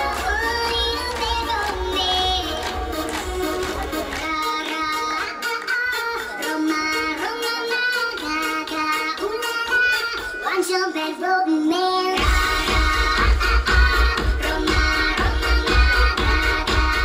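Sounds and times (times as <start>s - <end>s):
high childlike singing voice: 0.0s - 17.0s
pop dance track over pa: 0.0s - 17.0s.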